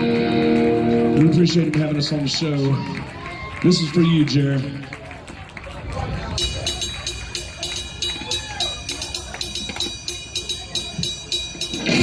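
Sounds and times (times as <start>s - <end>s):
crowd chatter: 0.0s - 12.0s
rapid hi-hat cymbal pattern: 6.4s - 12.0s.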